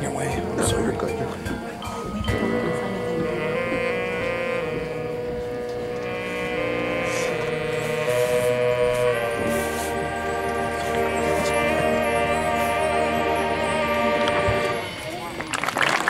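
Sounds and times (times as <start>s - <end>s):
marching band playing chords: 0.0s - 16.0s.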